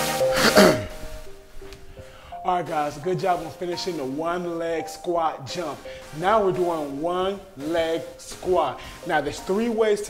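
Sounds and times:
electronic music: 0:00.0 - 0:10.0.

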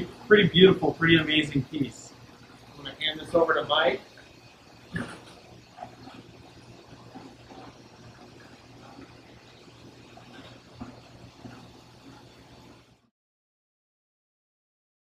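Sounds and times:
aquarium pumps humming: 0:00.0 - 0:13.1.

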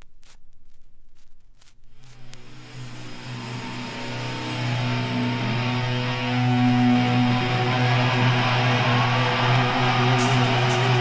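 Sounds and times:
distorted electric guitar drone: 0:02.0 - 0:11.0.

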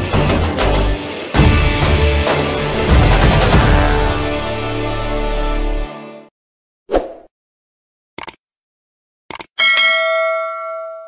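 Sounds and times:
double mouse-click sound effect: 0:09.3 - 0:09.5
bright bell ding: 0:09.6 - 0:11.0.

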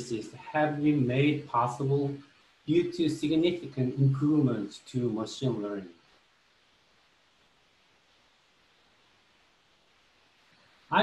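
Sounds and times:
man speaking: 0:00.0 - 0:05.9
faint room hiss: 0:00.0 - 0:11.0.

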